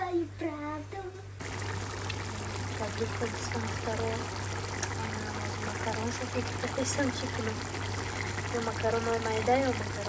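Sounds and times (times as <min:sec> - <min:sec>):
stew bubbling at a boil: 0:01.4 - 0:10.0.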